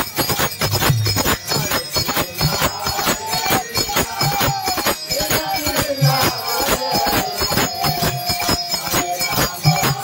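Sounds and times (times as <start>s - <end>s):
hand claps with jingling ring: 0.0s - 10.0s.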